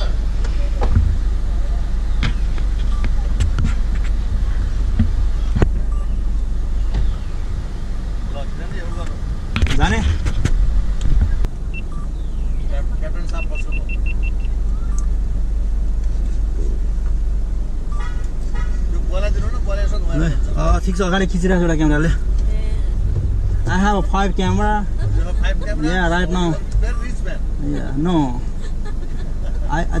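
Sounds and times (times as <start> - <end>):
voices: 0.0 - 10.3, 11.0 - 15.3, 17.8 - 30.0
car cabin rumble: 0.0 - 30.0
short high beeps: 13.4 - 15.1.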